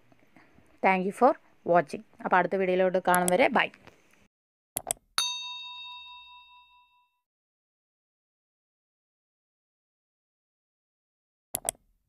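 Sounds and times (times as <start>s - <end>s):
bell ding ringing out: 5.2s - 7.2s.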